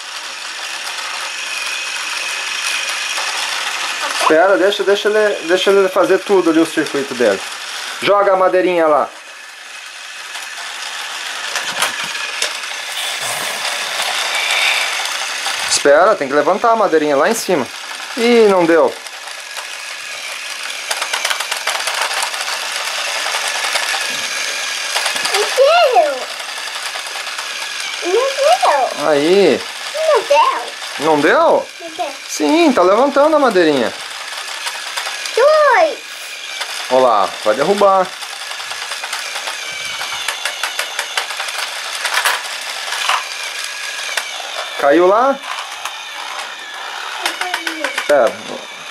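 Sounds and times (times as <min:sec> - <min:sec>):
toy train motor whirring: 0:00.0 - 0:48.9
plastic clicks and rattles: 0:38.7 - 0:43.3.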